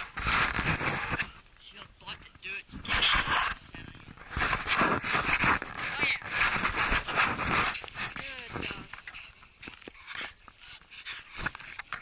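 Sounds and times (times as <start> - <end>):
dog scratching soil: 4.2 - 9.2.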